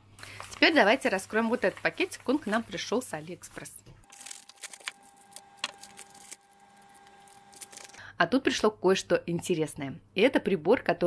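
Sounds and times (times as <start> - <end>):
padded mailer rustling: 4.1 - 8.0.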